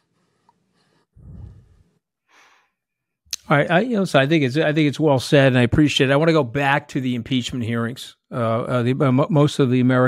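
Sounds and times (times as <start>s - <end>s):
man breathing: 0.1s - 2.9s.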